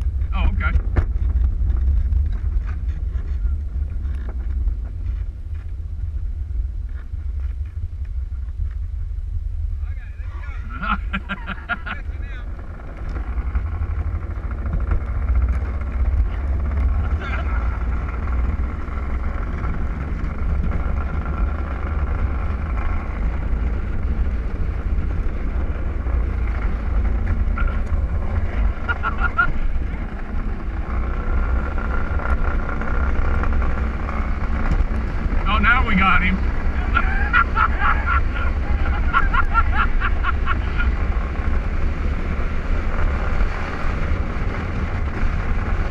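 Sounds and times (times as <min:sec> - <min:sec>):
thin whine: 0:00.0 - 0:45.9.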